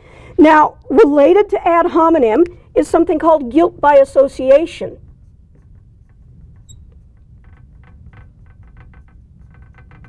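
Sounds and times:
low room hum: 0.0 - 10.0
marker squeaking on glass: 4.4 - 10.0.

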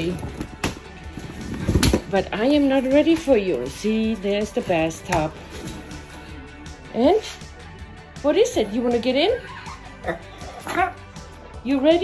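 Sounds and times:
vinyl rustling and crinkling: 0.0 - 3.7.

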